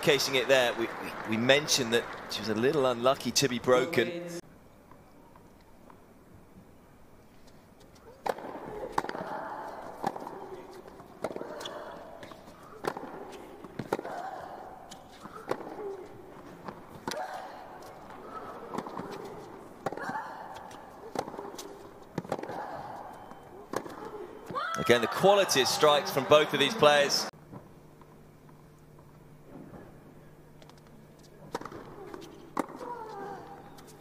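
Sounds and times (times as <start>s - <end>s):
tennis ball bouncing: 8.2s - 26.1s, 31.4s - 33.9s
tennis racket striking ball: 18.2s - 22.8s.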